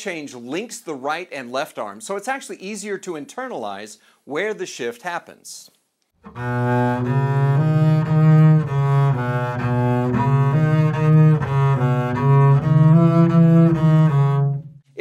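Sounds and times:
bowed double bass notes: 6.2 - 14.9.

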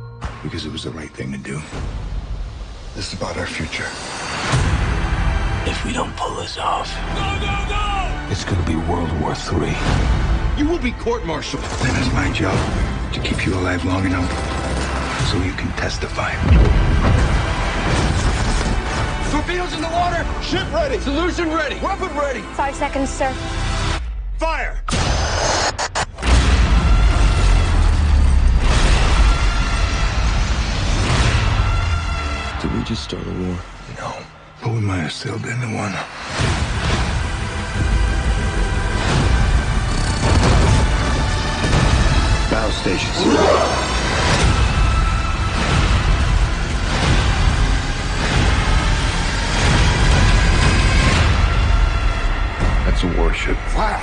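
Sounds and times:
trailer music: 0.0 - 54.0.

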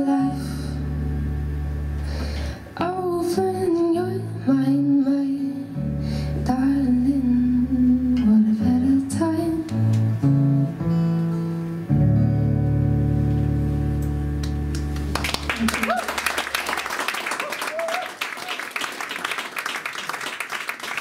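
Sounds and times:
woman singing wordless notes: 0.0 - 0.9, 2.8 - 9.8
acoustic guitar chords: 0.0 - 15.5.

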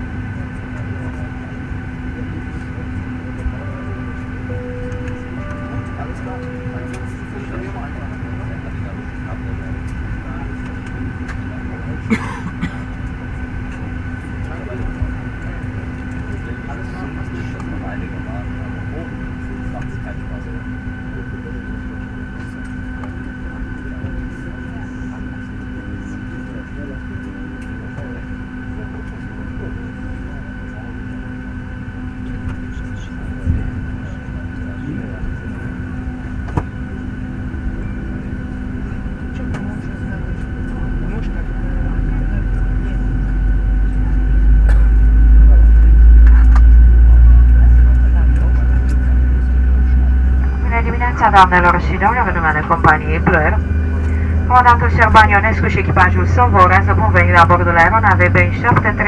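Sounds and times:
airplane cabin low rumble: 0.0 - 59.0
steady low hum: 0.0 - 59.0.

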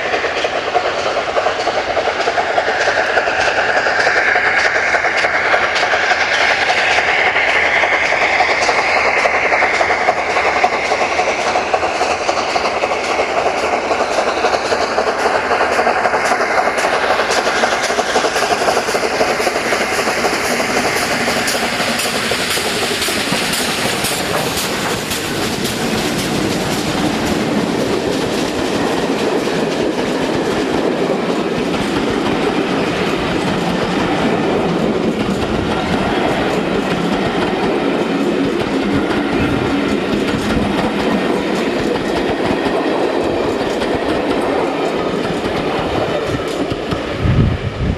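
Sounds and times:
steam locomotive exhaust beats: 0.0 - 47.9
wheels clickety-clack over rails: 0.0 - 47.9.

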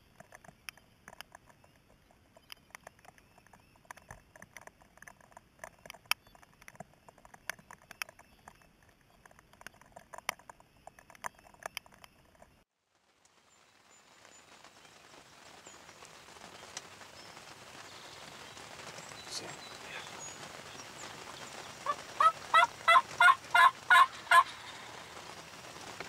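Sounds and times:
faint outdoor background: 0.0 - 26.0.

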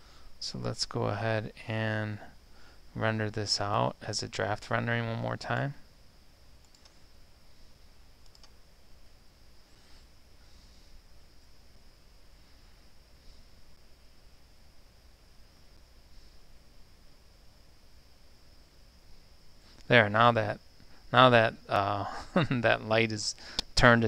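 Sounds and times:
faint steady hiss: 0.0 - 24.0
computer mouse clicks: 6.6 - 7.0, 8.2 - 8.6.

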